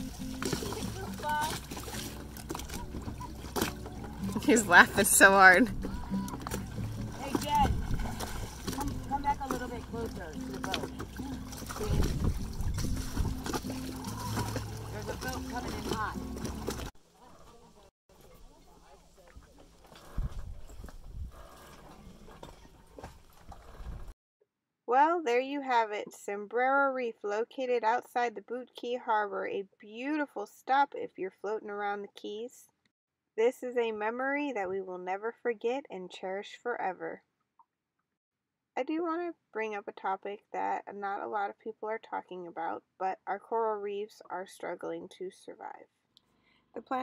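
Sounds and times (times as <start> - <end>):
water splashing and lapping: 0.0 - 24.2.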